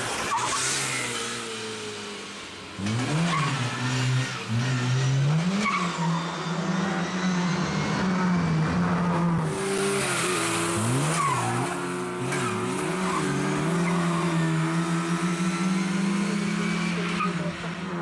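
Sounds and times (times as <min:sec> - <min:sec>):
rally car engine revving hard: 0:00.0 - 0:18.0.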